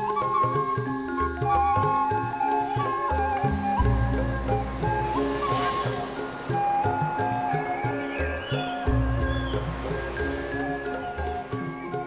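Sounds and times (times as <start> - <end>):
held synth notes: 0.0 - 12.0
deep bass notes: 3.4 - 11.4.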